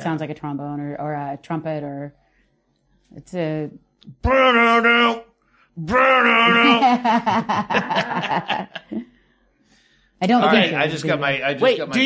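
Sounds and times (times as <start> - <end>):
person chuckling: 6.4 - 9.1.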